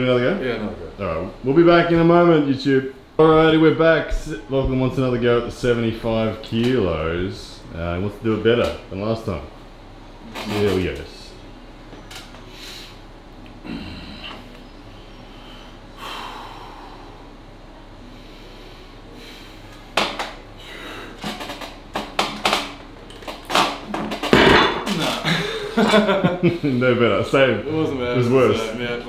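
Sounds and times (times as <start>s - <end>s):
heavy weight thud: 24.3s - 25.3s.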